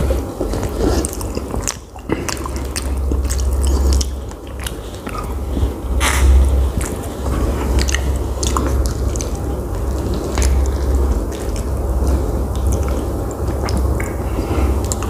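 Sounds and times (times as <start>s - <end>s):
low rumble: 0.0s - 15.0s
person chewing: 0.0s - 15.0s.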